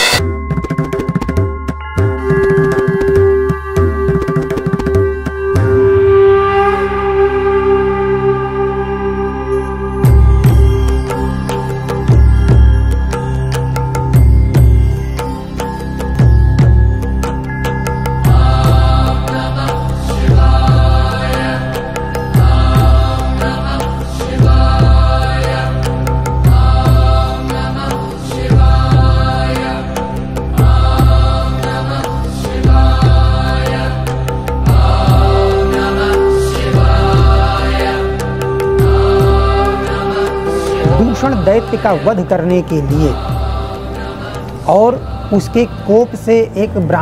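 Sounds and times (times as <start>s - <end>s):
held steady note: 1.8s - 15.1s, 32.6s - 46.6s
music with deep steady drone: 1.8s - 47.0s
devotional mantra chanting: 18.1s - 47.0s.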